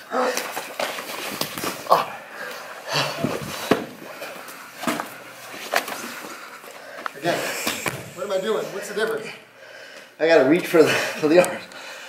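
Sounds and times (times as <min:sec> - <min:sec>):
short sharp breaths: 0:02.3 - 0:10.2.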